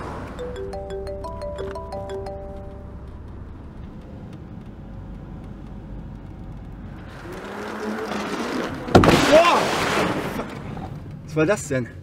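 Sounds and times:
car engine and road rumble: 1.8 - 12.0.

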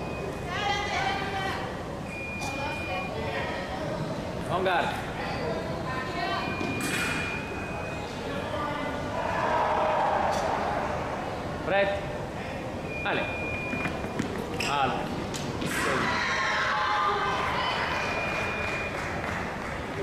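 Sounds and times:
background chatter in a hall: 0.0 - 20.0
electronic beep: 6.4 - 8.6.

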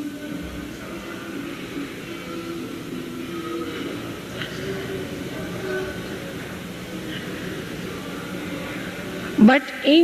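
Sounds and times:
faint distant voices murmuring: 0.0 - 10.0
low rumbling background noise: 0.0 - 10.0.

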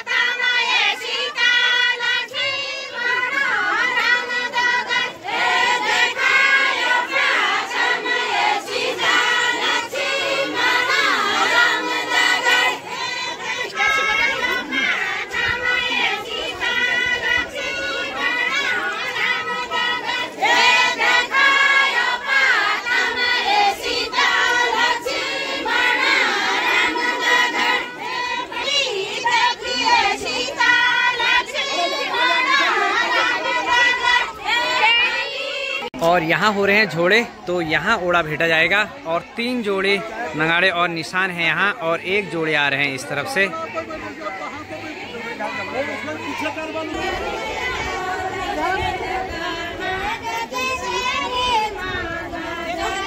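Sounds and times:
group of women singing folk song: 0.0 - 36.0, 43.8 - 53.0.

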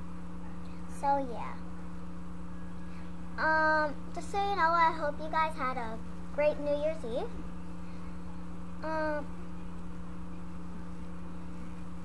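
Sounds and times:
steady background hum with throb: 0.0 - 12.0.

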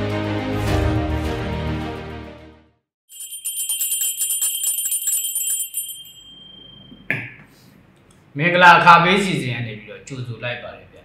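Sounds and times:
hand bells shaken rapidly: 3.1 - 6.8
high bell tone ringing: 3.1 - 7.1.

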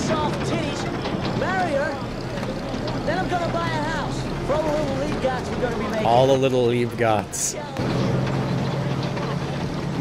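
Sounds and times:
truck engine humming: 0.0 - 10.0.

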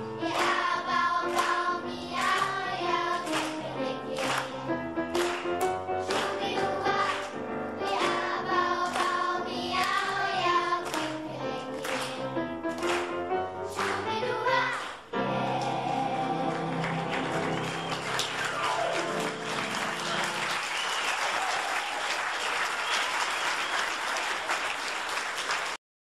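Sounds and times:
choir and band held chord: 0.0 - 17.9
audience applause: 3.2 - 3.6, 4.2 - 8.3, 14.7 - 25.8.

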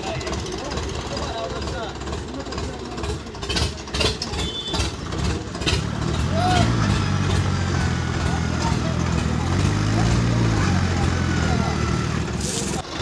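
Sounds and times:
tractor diesel engine running: 0.0 - 13.0
voices: 0.0 - 13.0.

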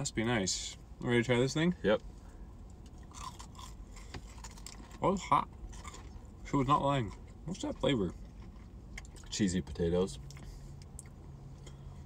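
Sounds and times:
chewing crispy food crunching: 2.7 - 9.4.

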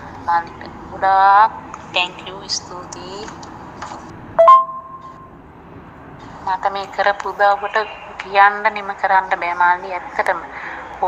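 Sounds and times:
two-note electronic chime: 4.4 - 5.3.

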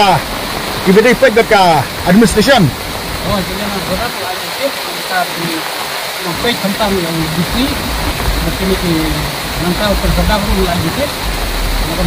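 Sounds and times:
people talking: 0.0 - 0.2, 0.9 - 11.2, 11.8 - 12.0
loud steady rushing noise: 0.0 - 12.0
low rumbling: 6.2 - 12.0.

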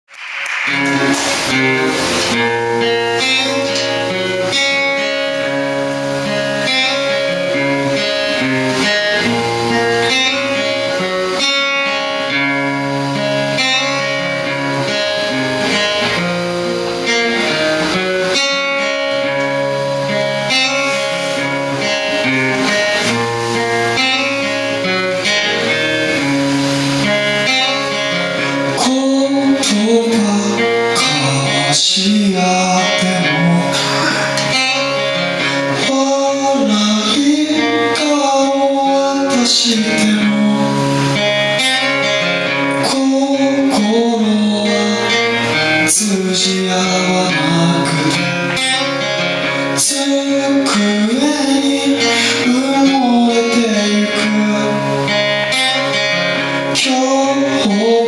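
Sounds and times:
acoustic guitar strumming: 0.0 - 58.0
electric guitar playing: 0.0 - 58.0
cajon played by hand: 0.1 - 4.5
person singing: 17.0 - 58.0.

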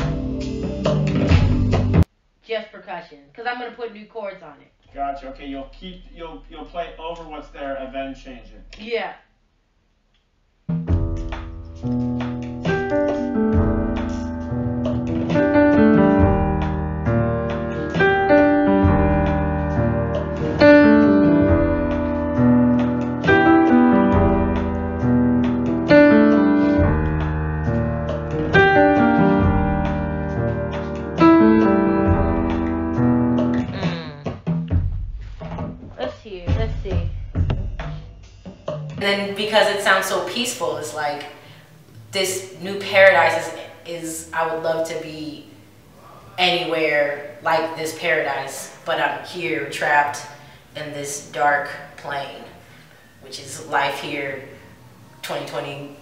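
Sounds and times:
electric piano chords: 11.1 - 34.0.

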